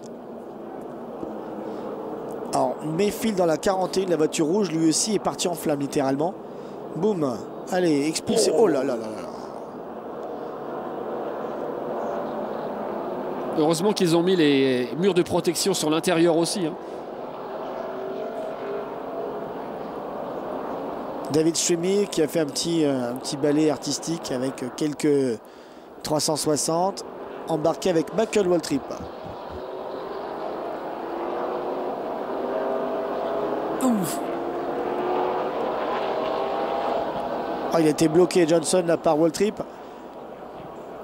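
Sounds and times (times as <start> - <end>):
race car engines droning: 0.0 - 41.0.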